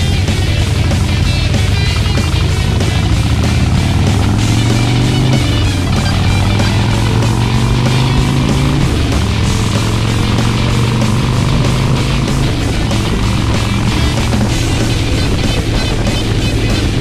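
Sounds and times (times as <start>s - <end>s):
background music: 0.0s - 17.0s
motorcycle engine cruising: 0.0s - 17.0s.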